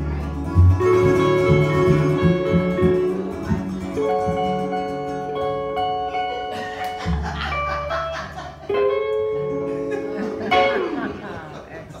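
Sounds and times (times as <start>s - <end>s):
electric guitar: 0.0s - 11.6s
acoustic guitar: 0.0s - 12.0s
upright bass: 0.0s - 12.0s.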